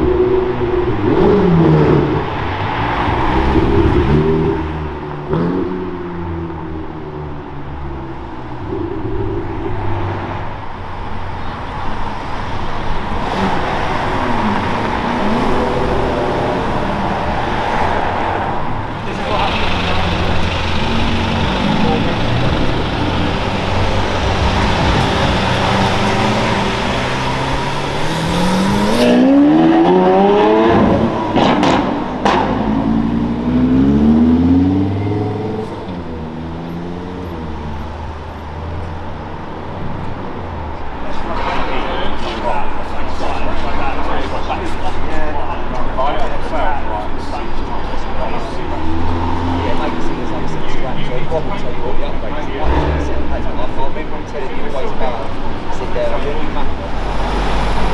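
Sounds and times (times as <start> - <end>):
car engines running at low speed: 3.4 - 57.9
car engine accelerating hard: 12.9 - 40.3, 41.0 - 57.9.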